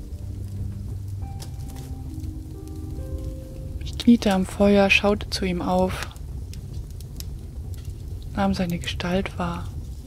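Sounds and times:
wood fire crackling: 0.0 - 10.0.

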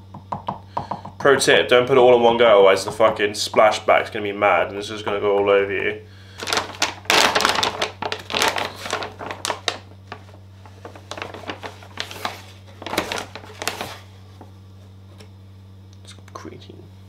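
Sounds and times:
plastic pouch crinkling: 6.3 - 14.5.

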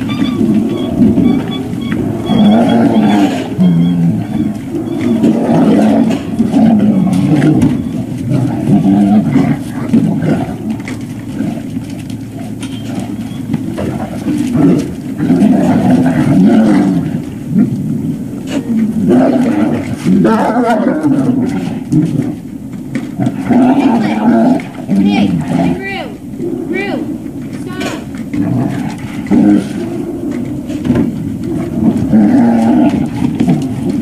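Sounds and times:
puppies chewing and gulping: 0.0 - 19.0, 27.1 - 34.0.

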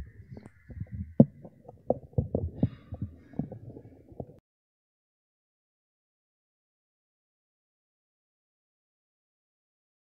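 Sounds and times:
dull thumps and knocks: 0.0 - 4.4.

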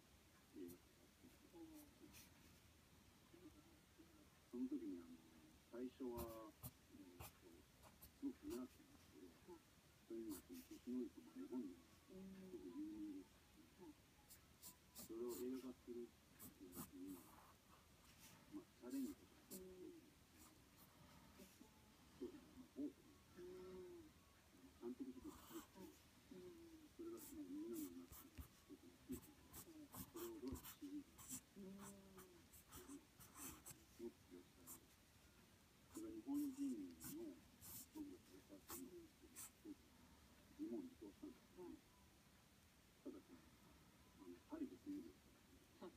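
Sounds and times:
quiet voice: 0.4 - 35.0, 35.9 - 42.0, 43.0 - 45.9
pen scratching on paper: 6.2 - 8.8, 16.4 - 18.3, 27.2 - 33.8, 35.9 - 39.6.

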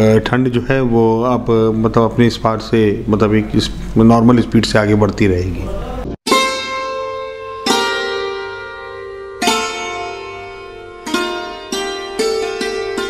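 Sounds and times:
plucked string notes: 6.3 - 13.0.

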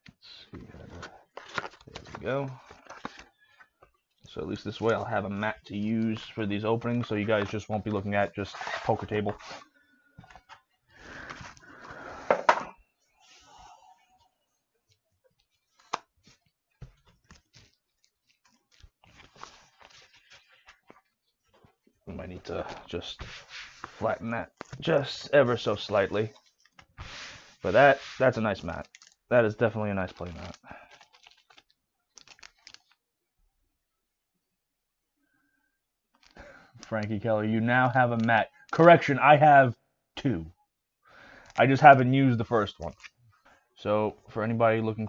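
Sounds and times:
mat sliding out of cardboard box: 27.0 - 28.2.

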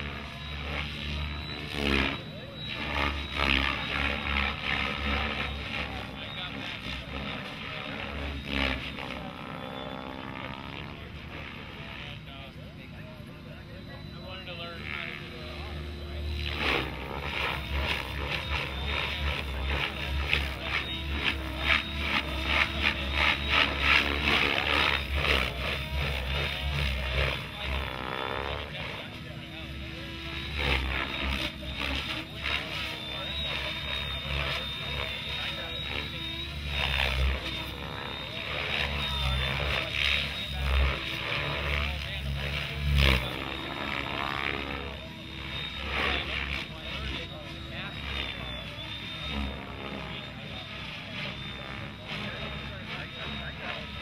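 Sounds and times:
model helicopter rotor and motor whine: 0.0 - 54.0
voices in background: 0.0 - 54.0.

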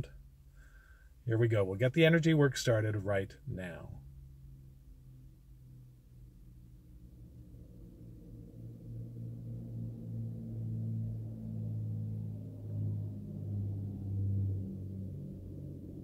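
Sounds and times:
low sustained drone: 3.9 - 16.0.

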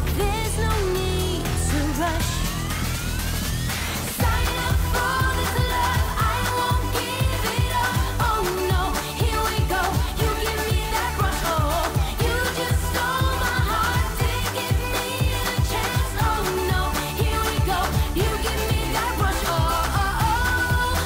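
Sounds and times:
woman singing lead vocal: 0.0 - 2.6, 4.1 - 21.0
electronic dance-pop backing: 0.0 - 21.0
kick drum beat: 4.2 - 21.0.

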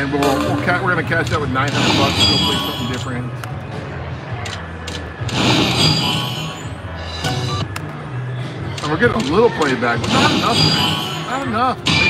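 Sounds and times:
slot machine game music: 0.0 - 3.2
low casino hum: 0.0 - 5.3
high-toned flourish: 0.2 - 1.4.

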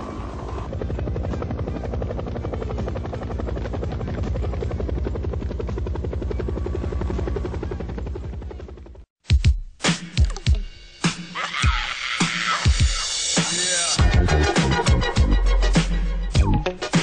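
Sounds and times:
helicopter rotor chopping: 0.0 - 9.1.

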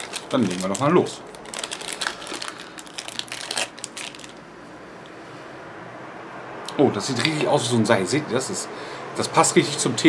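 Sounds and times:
plastic wrapper crinkling: 0.0 - 4.5.

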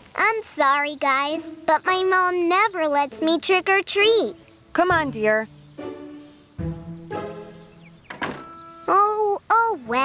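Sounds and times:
light background music: 0.8 - 9.0
door shutting: 8.0 - 8.8.

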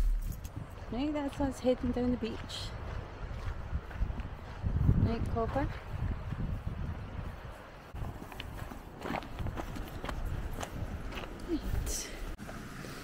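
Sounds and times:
footsteps walking: 0.0 - 11.9
wind on microphone: 0.2 - 12.0.

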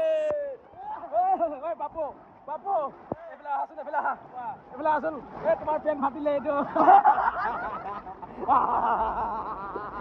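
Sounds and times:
laughter: 6.5 - 10.0.

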